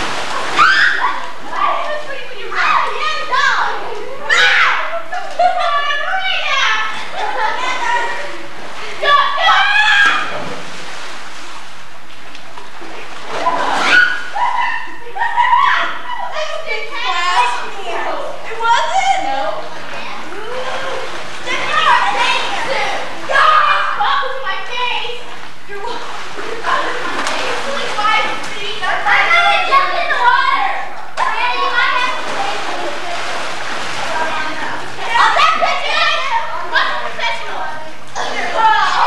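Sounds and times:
girls calling and chattering: 0.0s - 10.7s, 13.0s - 39.0s
children squealing and shouting: 0.4s - 8.4s, 9.0s - 10.4s, 13.4s - 19.6s, 20.2s - 25.2s, 35.0s - 37.5s.

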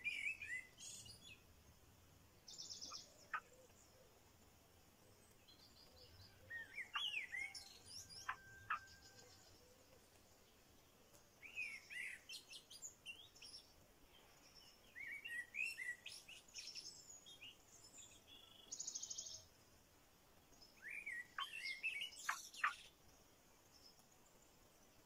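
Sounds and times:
songbirds chirping: 0.0s - 25.0s.

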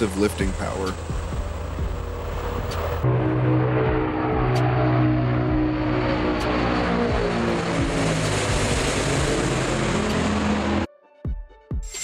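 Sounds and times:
propeller aircraft droning overhead: 0.0s - 10.9s.

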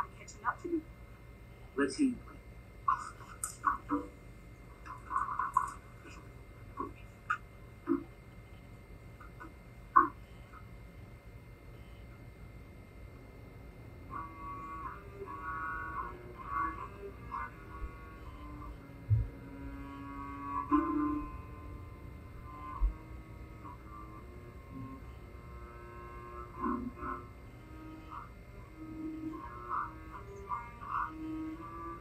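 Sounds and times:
solo cello slow melody: 14.0s - 32.0s.

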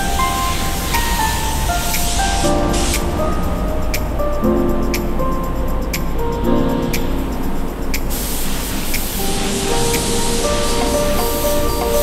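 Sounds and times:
spray gun hissing: 0.0s - 3.2s, 8.0s - 12.0s
background music: 9.0s - 12.0s.

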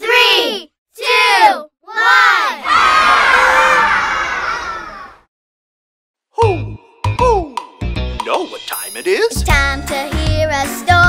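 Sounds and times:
children shouting numbers: 0.0s - 5.2s
children cheering and yelling: 0.1s - 5.3s.

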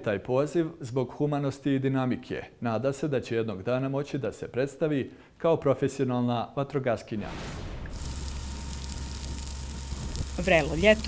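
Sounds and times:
grass fire hissing and crackling: 7.2s - 11.0s
low rumble: 7.2s - 11.0s.

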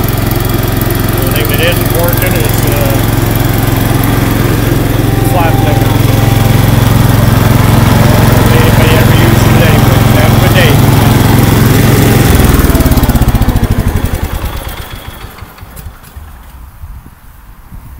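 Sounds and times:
tractor engine running: 0.0s - 16.9s.

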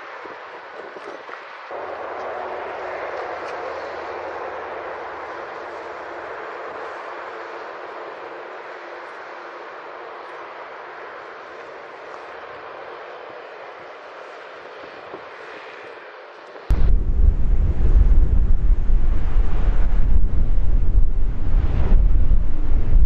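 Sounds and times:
jet engines rushing: 1.6s - 23.0s.

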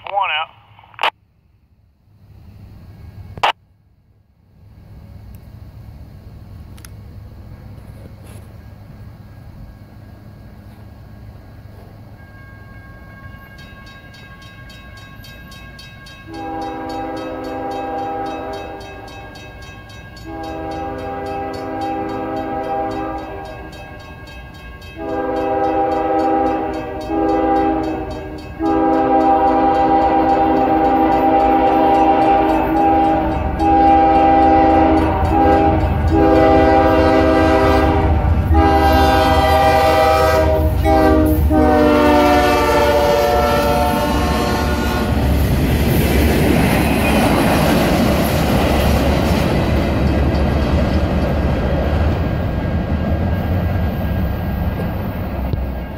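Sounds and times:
locomotive engine and wheel rumble: 0.0s - 15.8s, 16.4s - 55.9s
locomotive air horn blasts: 16.3s - 18.9s, 20.2s - 23.7s, 25.0s - 45.2s.

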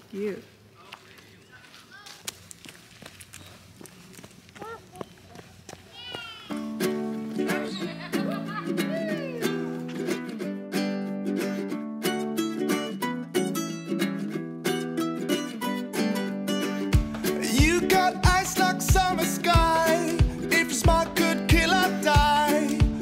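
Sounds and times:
plucked-string background music: 6.6s - 23.0s.

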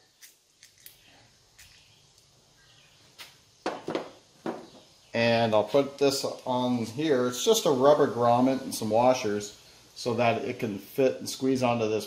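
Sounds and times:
knocks: 3.6s - 4.8s.

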